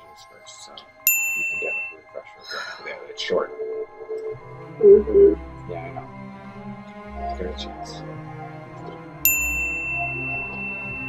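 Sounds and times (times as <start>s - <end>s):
bright ding ringing: 1.1s - 2.0s, 9.3s - 11.0s.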